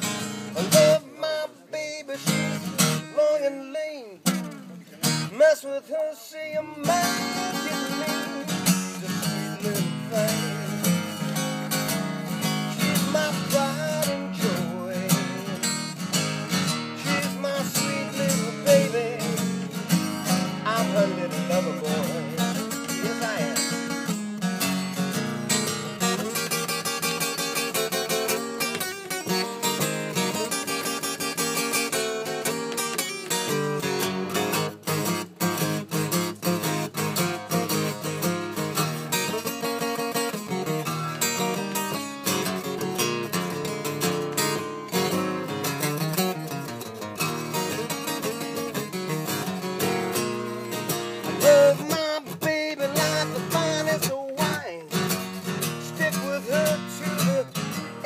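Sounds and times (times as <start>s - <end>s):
acoustic guitar playing blues: 0.0s - 58.0s.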